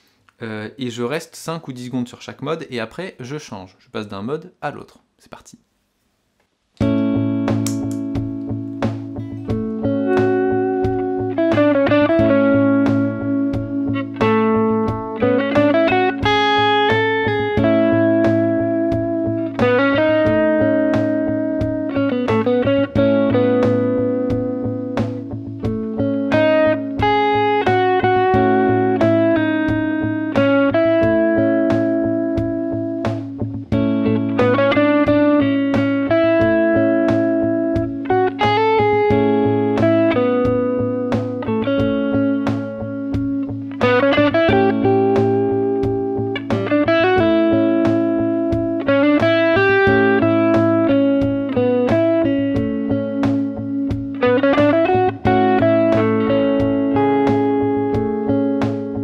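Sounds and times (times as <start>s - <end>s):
electric guitar melody: 6.8s - 59.0s
steady drum beat: 6.8s - 59.0s.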